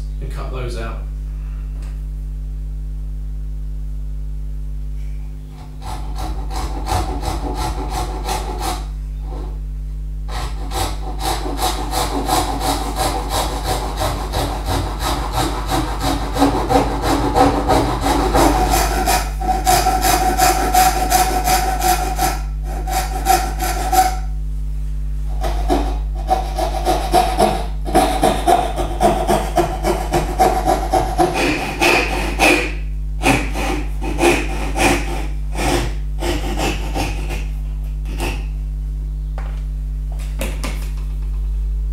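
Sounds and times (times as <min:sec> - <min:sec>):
hand saw cutting wood: 0:05.6 - 0:09.6, 0:10.3 - 0:24.3, 0:25.3 - 0:38.5.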